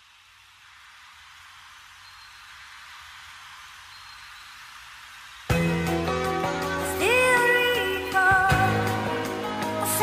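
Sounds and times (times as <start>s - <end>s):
static-like hiss: 0.0s - 10.0s.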